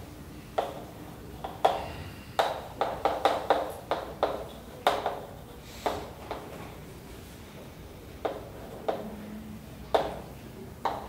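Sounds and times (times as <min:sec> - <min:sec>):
chalk tapping on blackboard: 0:00.6 - 0:00.8, 0:02.4 - 0:06.5, 0:08.2 - 0:09.1.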